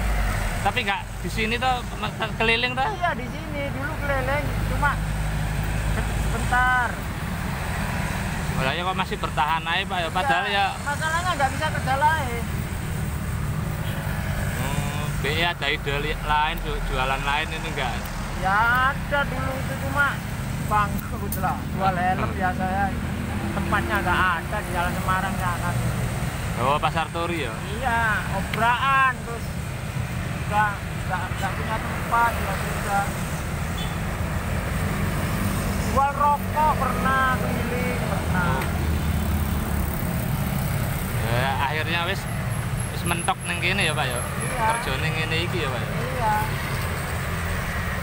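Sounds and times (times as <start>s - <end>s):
traffic engine rumble: 0.0s - 48.0s.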